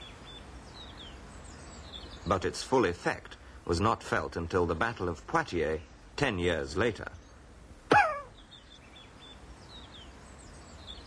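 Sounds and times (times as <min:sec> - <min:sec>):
faint birdsong chirping: 0:00.0 - 0:11.0
person crying out: 0:07.9 - 0:08.3.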